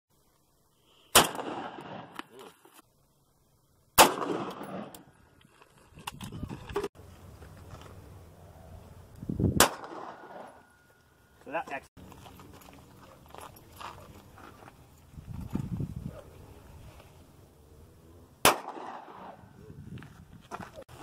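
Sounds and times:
pistol gunshot: 1.1s - 2.2s, 4.0s - 5.0s, 9.6s - 10.6s, 18.4s - 19.5s
rifle gunshots with echo: 1.1s - 2.2s, 4.0s - 5.1s, 9.6s - 10.6s, 18.4s - 19.6s.

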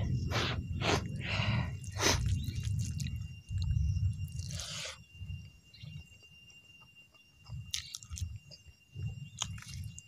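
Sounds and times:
faint steady high tone: 0.0s - 10.0s
person chewing rice: 1.8s - 3.7s, 4.3s - 5.0s, 7.7s - 8.6s, 9.3s - 10.0s.

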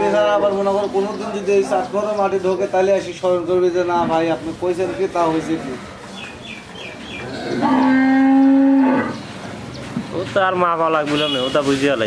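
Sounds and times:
cow mooing: 7.2s - 9.2s.

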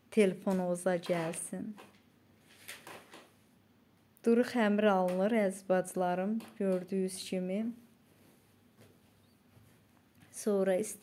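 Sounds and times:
cling film rustling and crinkling: 1.1s - 3.4s.

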